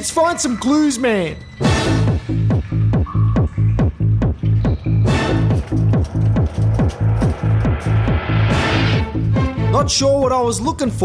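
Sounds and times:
electronic dance music: 0:01.8 - 0:09.6.

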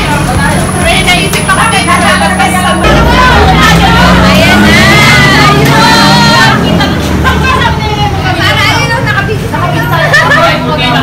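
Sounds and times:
low engine drone: 0:00.0 - 0:08.6
people talking and laughing: 0:00.0 - 0:11.0.

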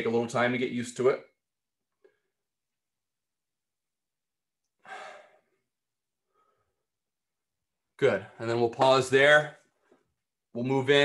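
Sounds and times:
man exhaling breathily: 0:04.8 - 0:05.6.

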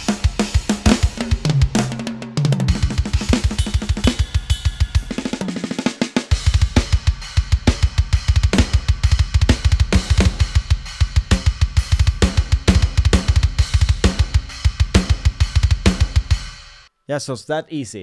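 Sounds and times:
snare drum: 0:02.8 - 0:07.0, 0:07.6 - 0:10.6, 0:11.2 - 0:16.2
cymbals: 0:03.0 - 0:07.3.

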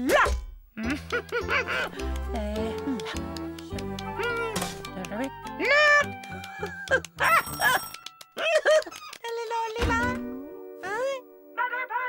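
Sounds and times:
cartoon background music: 0:00.1 - 0:08.4, 0:09.3 - 0:12.0.

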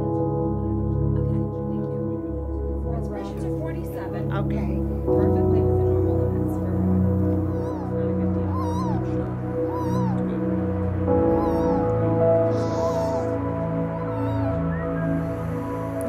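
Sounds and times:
soft ambient music: 0:00.0 - 0:16.0
baby crying: 0:07.5 - 0:10.4, 0:11.1 - 0:14.7.

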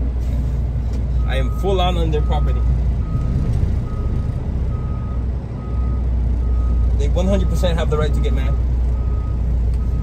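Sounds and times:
diesel engine rumble: 0:00.0 - 0:10.0
backup alarm beeping: 0:01.2 - 0:07.7, 0:08.4 - 0:10.0.

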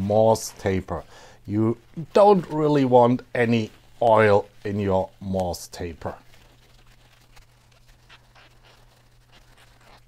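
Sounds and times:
paper towel scrubbing inside metal: 0:00.0 - 0:10.0.

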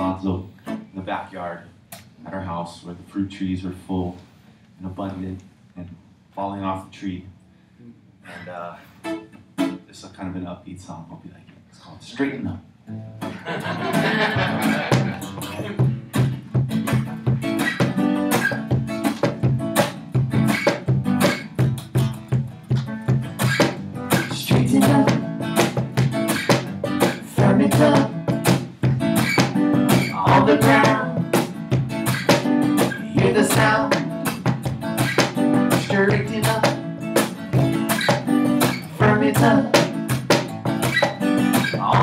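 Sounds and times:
acoustic guitar strumming: 0:08.9 - 0:09.9, 0:12.9 - 0:42.0
cajon beating rhythm: 0:13.2 - 0:42.0
woman singing: 0:24.3 - 0:25.3, 0:27.3 - 0:28.2, 0:30.1 - 0:31.3, 0:33.1 - 0:34.2, 0:35.8 - 0:36.8, 0:39.0 - 0:39.9.

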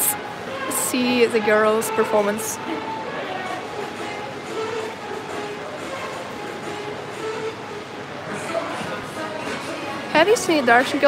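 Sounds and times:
echoing indoor crowd hubbub: 0:00.0 - 0:11.0.

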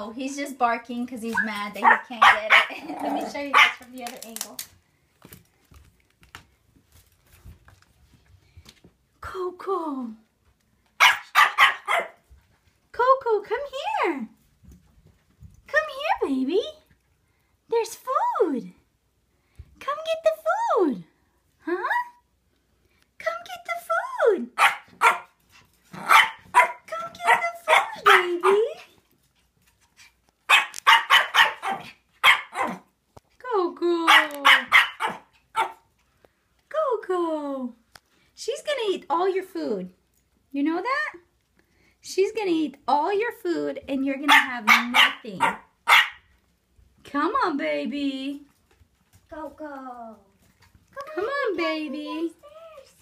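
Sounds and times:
puppy barking: 0:01.3 - 0:03.9, 0:11.0 - 0:12.2, 0:24.5 - 0:25.4, 0:26.0 - 0:28.8, 0:30.5 - 0:32.9, 0:34.1 - 0:35.9, 0:44.3 - 0:46.3.

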